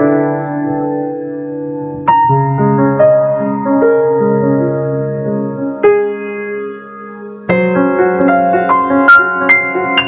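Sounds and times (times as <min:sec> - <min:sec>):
piano chord: 0:00.0 - 0:10.0.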